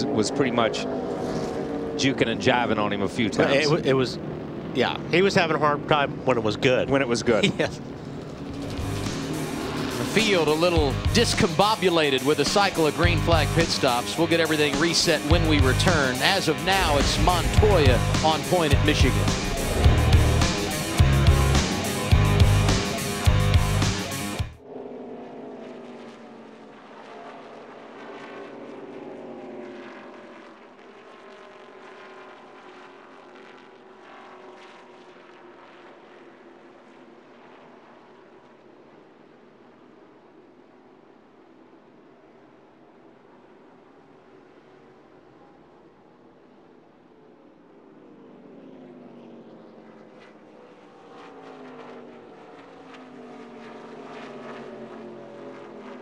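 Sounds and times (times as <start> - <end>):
race car engine from inside: 0.0 - 4.2, 4.9 - 31.0, 35.9 - 56.0.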